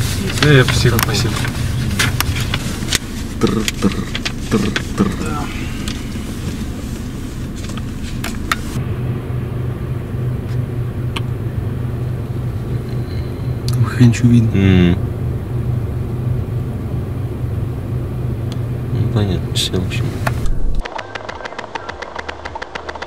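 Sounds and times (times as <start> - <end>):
car engine idling: 0.0 - 23.0
paper rustling and clicks: 0.2 - 5.2.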